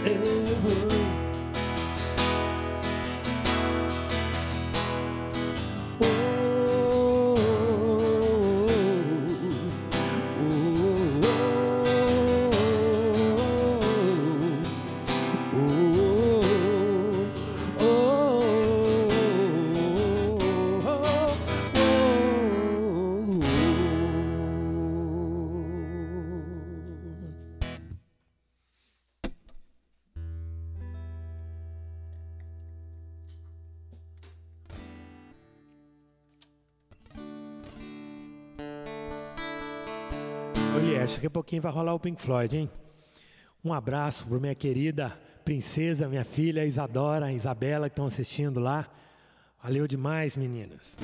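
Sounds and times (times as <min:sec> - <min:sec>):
man singing: 0:00.0 - 0:01.4, 0:05.8 - 0:27.5, 0:40.6 - 0:42.2
strummed acoustic guitar: 0:00.0 - 0:28.0, 0:30.2 - 0:41.3.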